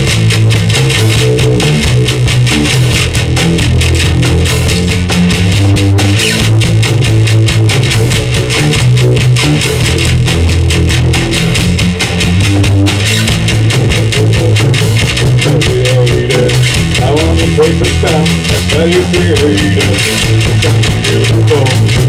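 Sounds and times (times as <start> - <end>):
rock band playing loudly: 0.0 - 22.0
person singing: 15.2 - 22.0.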